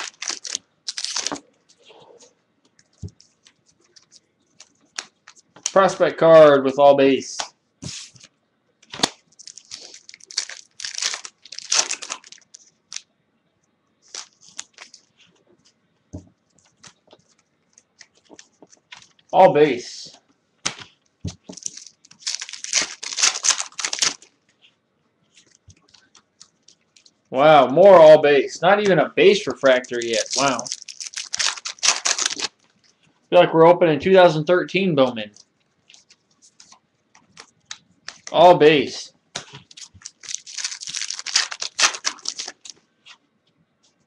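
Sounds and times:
foil wrapper tearing and crinkling: 0.0 - 1.4, 8.8 - 13.0, 14.1 - 15.1, 21.4 - 24.3, 29.5 - 32.7, 35.9 - 38.3, 39.4 - 42.8
faint cards being handled: 7.4 - 12.8, 14.0 - 19.4, 20.0 - 27.2, 35.3 - 38.4
trading cards shuffled by hand: 14.1 - 15.1, 29.6 - 32.6, 39.4 - 43.2.

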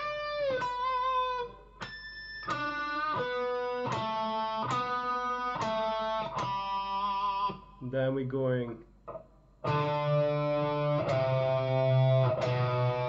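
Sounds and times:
electric guitar single notes: 0.0 - 7.8, 9.1 - 13.0.

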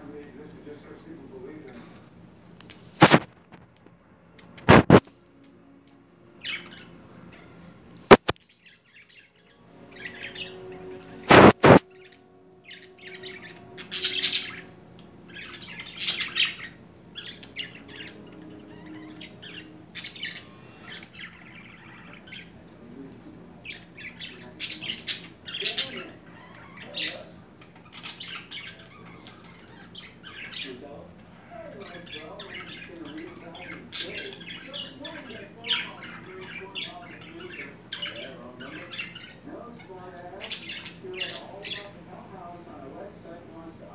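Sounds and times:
budgerigars chirping: 6.3 - 7.4, 8.1 - 42.0.

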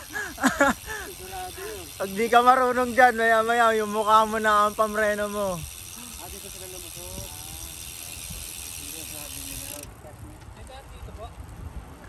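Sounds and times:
bicycle freewheel buzzing: 0.0 - 11.4
wind rumble on microphone: 10.2 - 12.0.

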